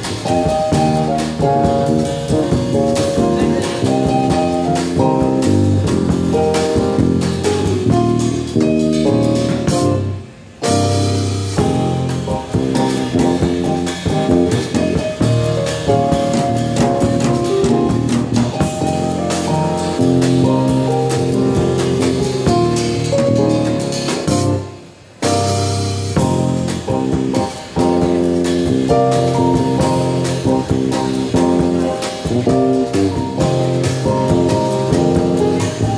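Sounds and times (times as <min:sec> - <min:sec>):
jazz trio playing: 0:00.0 - 0:35.9.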